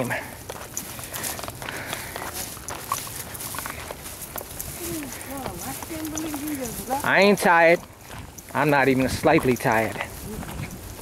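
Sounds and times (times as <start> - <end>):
footsteps on rocky dirt trail: 0.0 - 11.0.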